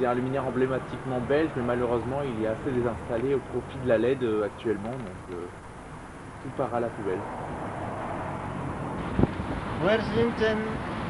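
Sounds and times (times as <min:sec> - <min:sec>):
person speaking: 0:00.0 - 0:05.6
low rumble and hiss: 0:00.0 - 0:11.0.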